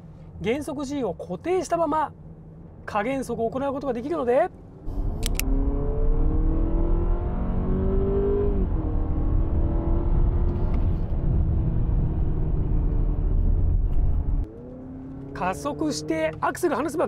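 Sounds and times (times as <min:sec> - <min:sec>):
road rumble: 0:00.0 - 0:17.0
car engine accelerating: 0:04.8 - 0:17.0.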